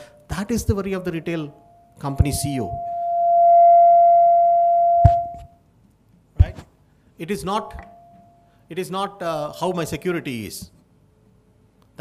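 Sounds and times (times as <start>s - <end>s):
microphone feedback howl: 1.6s - 5.6s
short thump: 5.0s - 5.5s.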